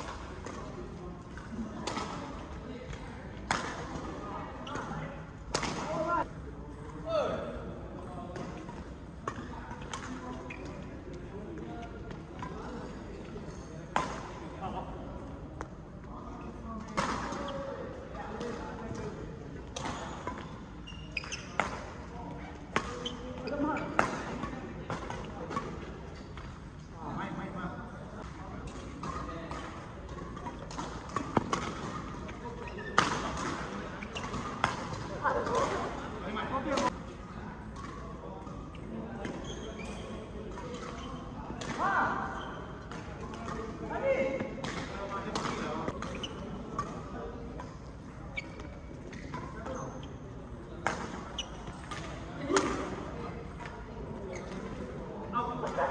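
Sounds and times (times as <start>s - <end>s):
players' voices: 0.0s - 55.9s
racket hitting shuttlecock: 5.5s - 6.0s
shoes squeaking on court: 10.0s - 11.1s, 18.4s - 26.6s, 28.7s - 36.1s, 38.8s - 41.3s, 42.2s - 43.7s, 44.6s - 47.0s, 47.6s - 52.2s, 53.6s - 54.9s.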